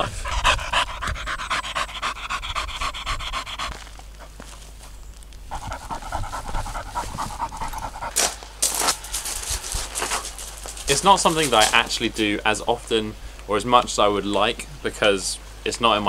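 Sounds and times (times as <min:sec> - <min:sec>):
dog panting rapidly: 0:00.0 - 0:04.4, 0:05.5 - 0:12.1.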